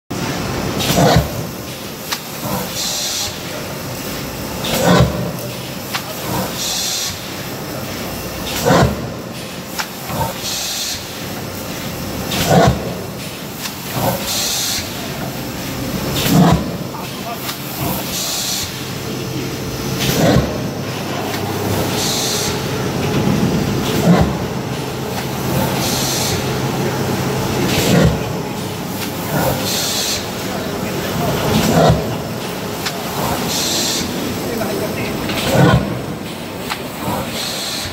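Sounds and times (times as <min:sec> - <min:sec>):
continuous machine hum: 0:00.1 - 0:37.9
machine knocking: 0:03.4 - 0:37.9
air hiss bursts: 0:10.4 - 0:11.3, 0:14.0 - 0:15.1, 0:17.9 - 0:18.9, 0:21.6 - 0:22.8, 0:25.6 - 0:26.6, 0:29.2 - 0:30.4, 0:33.1 - 0:34.3, 0:37.3 - 0:37.9.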